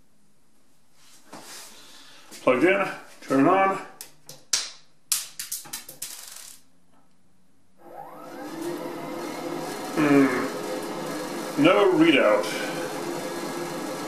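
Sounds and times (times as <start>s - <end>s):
blower fan whine: 7.8s - 14.0s.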